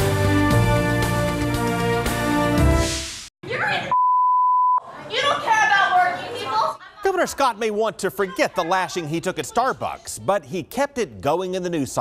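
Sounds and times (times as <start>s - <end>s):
high-pitched censor bleep: 3.9s - 4.8s.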